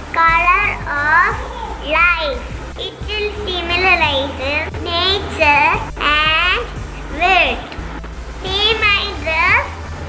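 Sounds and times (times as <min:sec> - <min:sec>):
quiet background music: 0:00.0 - 0:10.0
girl speaking: 0:00.2 - 0:07.7, 0:08.4 - 0:09.7.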